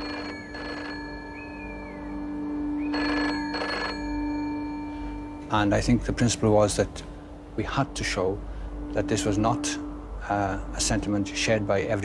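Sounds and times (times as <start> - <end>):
telephone bell ringing: 0.0 - 1.6, 2.9 - 5.4.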